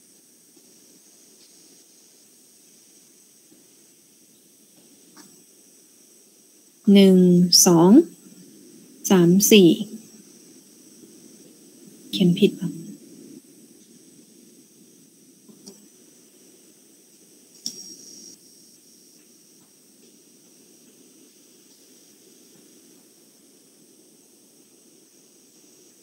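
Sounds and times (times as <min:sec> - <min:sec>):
low background hiss: 0:00.0 - 0:26.0
thin high-pitched whine: 0:00.0 - 0:26.0.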